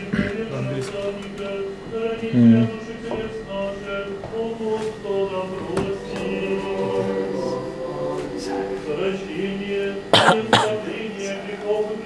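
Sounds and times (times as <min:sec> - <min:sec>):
person coughing: 0:00.0 - 0:00.5, 0:10.1 - 0:10.8
choral singing: 0:00.0 - 0:12.0.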